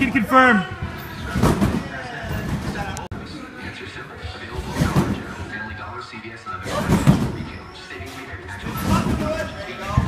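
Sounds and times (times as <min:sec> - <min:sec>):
trampoline bed thump: 0:01.2 - 0:03.0, 0:04.6 - 0:05.4, 0:06.7 - 0:07.6, 0:08.6 - 0:10.0.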